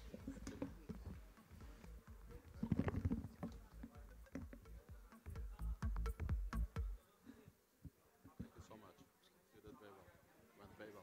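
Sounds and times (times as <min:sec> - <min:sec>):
faint voices murmuring: 0:00.0 - 0:11.0.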